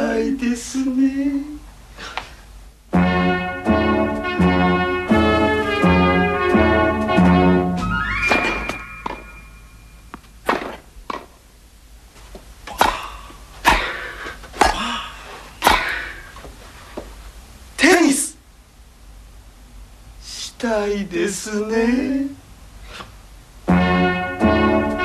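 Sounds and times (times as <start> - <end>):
musical jingle: 2.9 - 10.2, 23.7 - 25.0
rising tone: 3.2 - 10.4.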